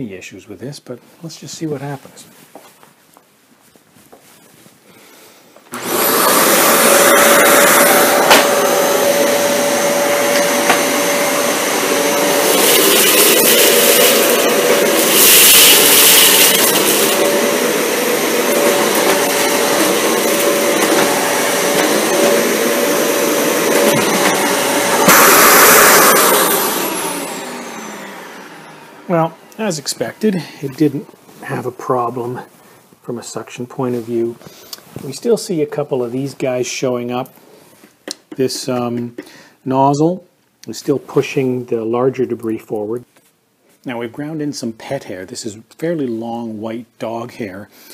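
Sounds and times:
vacuum motor winding down: 5.7s - 30.4s
vacuum cleaner running: 5.7s - 31.4s.

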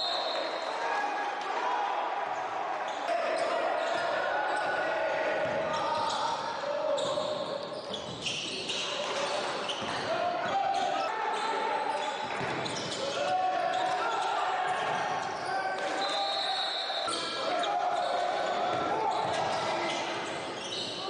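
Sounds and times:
sneakers squeaking: 2.8s - 4.8s, 5.4s - 21.0s.

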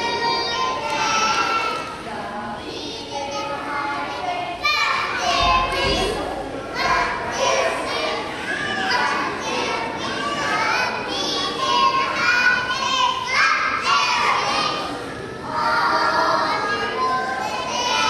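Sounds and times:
young children singing: 0.0s - 18.0s.

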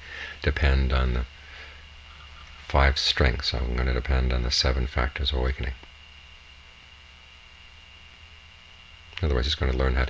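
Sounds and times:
low hum with hiss: 0.0s - 10.0s
thin steady high tone: 1.9s - 3.6s.

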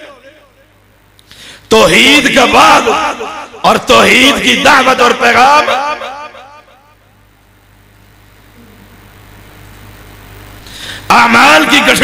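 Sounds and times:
man's voice over loudspeaker echoing: 0.0s - 0.7s, 1.7s - 6.9s, 11.1s - 12.0s
low hum and rumble: 7.0s - 11.0s.

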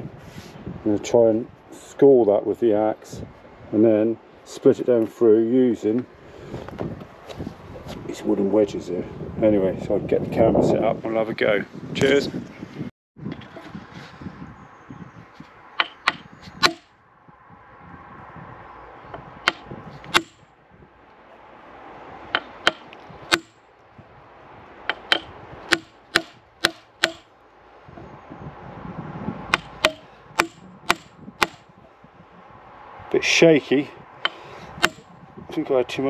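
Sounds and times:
wooden mallet knocking on axe: 15.8s - 16.9s, 19.4s - 20.4s, 22.4s - 23.6s, 24.9s - 27.2s, 29.5s - 31.6s, 34.8s - 35.0s.

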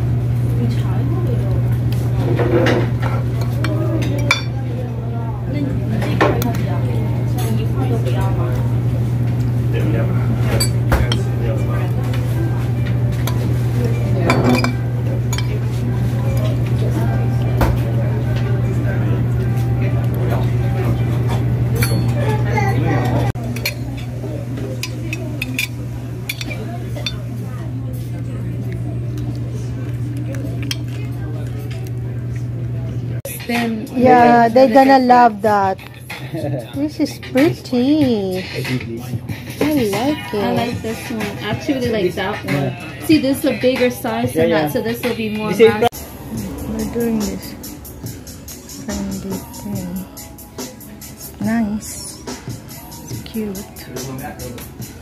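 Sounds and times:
cutlery clinking on ceramic plate: 14.3s - 15.6s, 21.8s - 22.2s, 24.8s - 27.2s
steady low hum: 45.8s - 55.0s.

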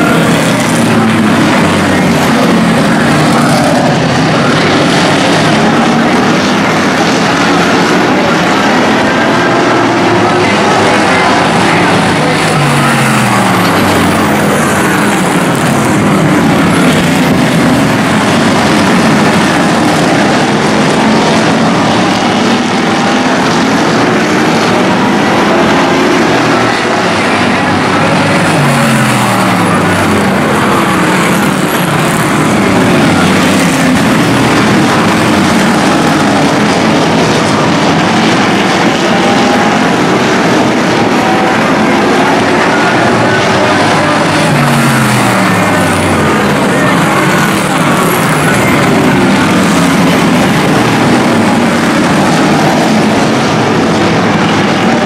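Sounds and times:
race car engines at high revs: 0.0s - 55.0s.

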